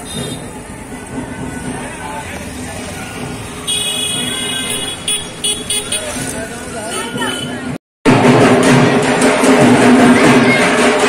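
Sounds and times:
crowd chatter: 0:00.0 - 0:11.0
street traffic: 0:00.0 - 0:11.0
vehicle horn tooting: 0:03.7 - 0:06.2.

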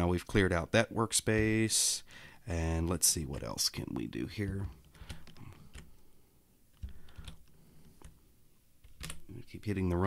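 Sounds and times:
computer keyboard keystrokes: 0:04.5 - 0:05.9, 0:06.7 - 0:08.2, 0:08.8 - 0:09.3.

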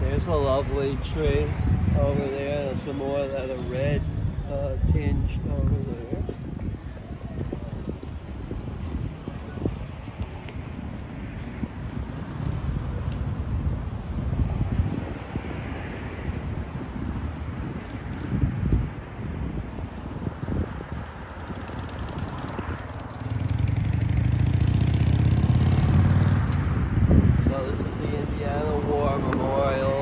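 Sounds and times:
road traffic: 0:00.0 - 0:30.0
wind buffeting microphone: 0:00.0 - 0:30.0
vehicle rumbling by: 0:10.7 - 0:30.0.

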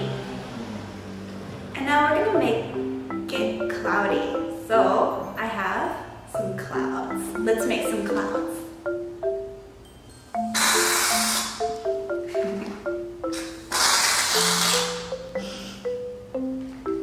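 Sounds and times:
marimba background music: 0:01.8 - 0:17.0
aerosol can hissing: 0:10.5 - 0:11.6.

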